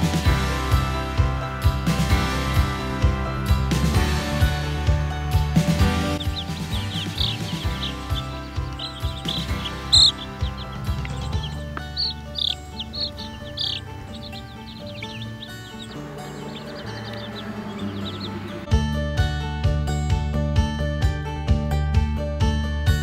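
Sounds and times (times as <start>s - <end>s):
baby chicks peeping: 0.0s - 18.7s
background music: 0.0s - 23.0s.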